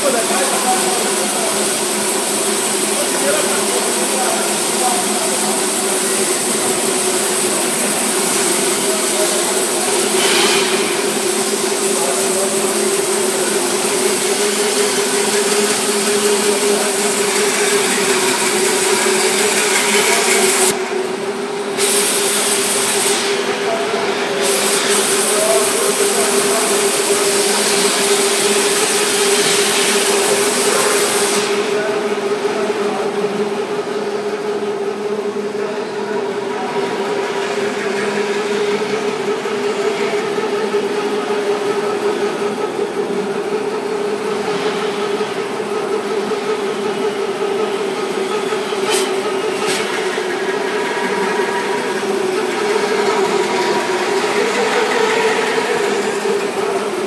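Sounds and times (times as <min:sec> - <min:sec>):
machine humming: 0:00.0 - 0:57.0.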